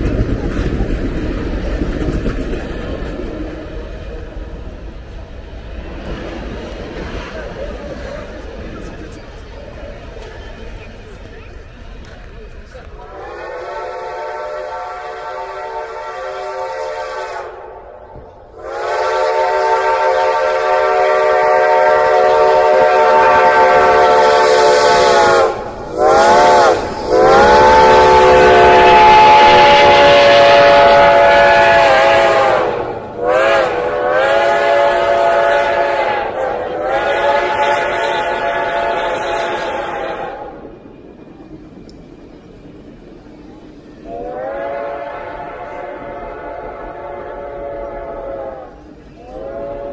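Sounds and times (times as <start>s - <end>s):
passing train rumble: 0.0s - 49.9s
steam whistle blasts: 13.1s - 17.8s, 18.6s - 40.6s, 43.9s - 49.9s.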